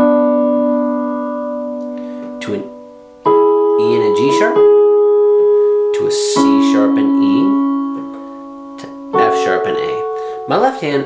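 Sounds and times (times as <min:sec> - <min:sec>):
digital piano chord sustaining: 0:00.0 - 0:11.0.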